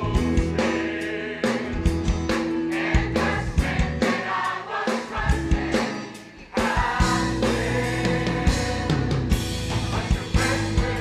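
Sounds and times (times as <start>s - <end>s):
choir singing gospel: 0.0s - 11.0s
instrumental backing with beat: 0.0s - 11.0s.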